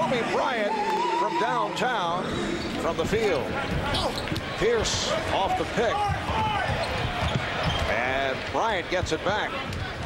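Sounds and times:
arena crowd murmur: 2.1s - 10.0s.

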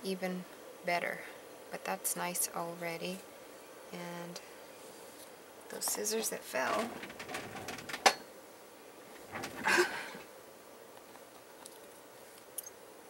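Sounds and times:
short laugh: 9.6s - 10.2s.

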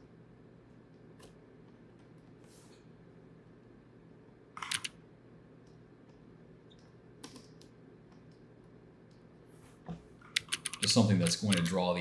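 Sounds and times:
computer keyboard keys clicking: 4.6s - 5.0s, 6.7s - 8.4s, 10.3s - 11.8s.

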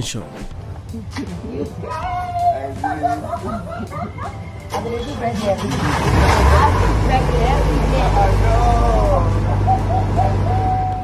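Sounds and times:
excited voices exclaiming: 1.7s - 4.8s, 8.5s - 11.0s
loud low rumble: 5.6s - 11.0s.

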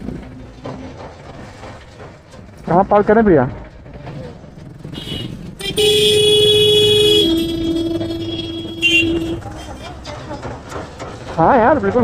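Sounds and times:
traffic rumble: 0.0s - 12.0s
vehicle horns honking: 4.9s - 9.9s.

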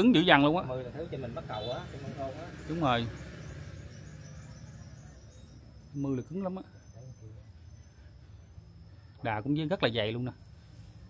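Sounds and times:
insects chirping: 0.0s - 11.0s.

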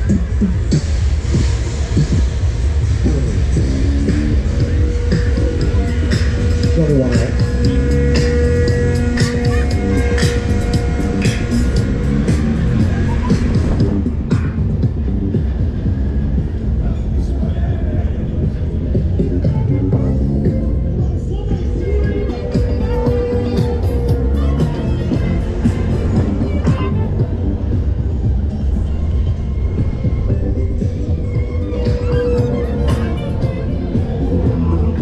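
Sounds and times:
loud pop music over speakers: 0.0s - 35.0s.

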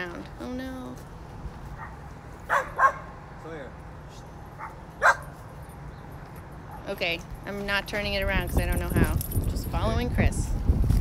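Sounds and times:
dog barking: 1.8s - 3.1s, 4.6s - 5.4s.

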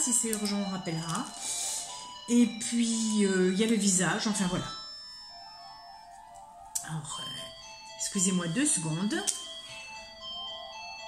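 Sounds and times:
telephone melodic ringtone: 0.0s - 11.0s.

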